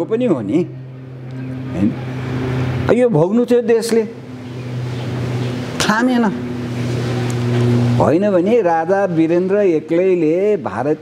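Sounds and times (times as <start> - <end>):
constant low hum: 0.0 - 11.0
motor vehicle passing: 0.0 - 11.0.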